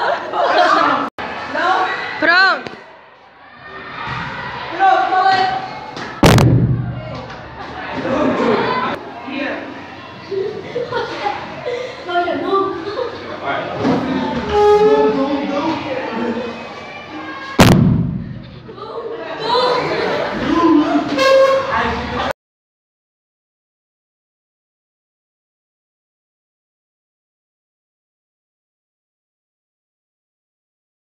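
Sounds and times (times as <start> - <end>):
murmured talk: 0.0 - 22.3
balloon exploding with loud bang: 6.2 - 7.1, 17.6 - 18.6.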